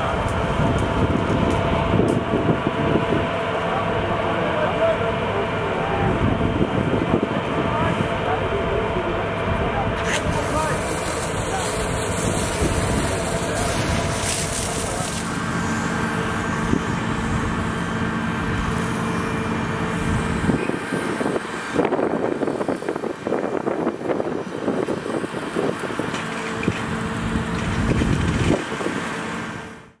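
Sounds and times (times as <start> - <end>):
engine hum: 0.0 - 30.0
fire hose spraying water: 9.8 - 29.9.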